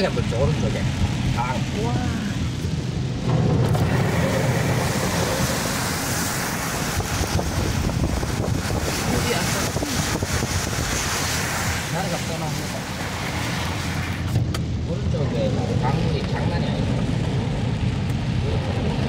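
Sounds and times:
wind noise on microphone: 2.3 - 11.9
tyres hissing through water: 3.8 - 14.3.

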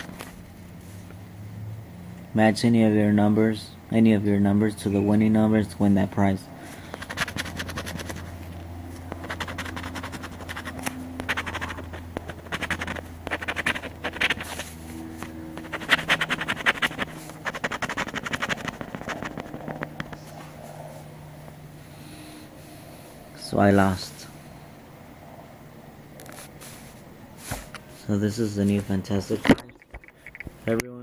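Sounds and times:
coin scratching lottery ticket: 6.8 - 20.4.

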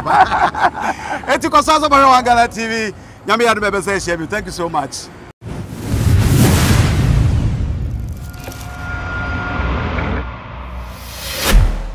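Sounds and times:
deep rumbling boom: 5.4 - 11.9.

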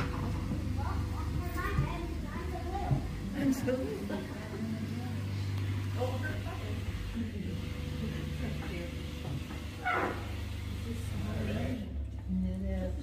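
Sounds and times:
boat motor humming: 0.0 - 13.0.

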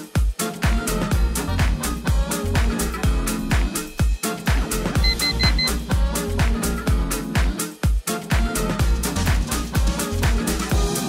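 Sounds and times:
electronic dance music: 1.7 - 6.1
interval timer beeps: 5.0 - 5.8.

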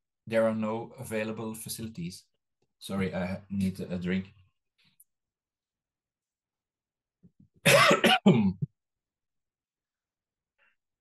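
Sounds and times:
man coughing hard: 7.6 - 8.7.

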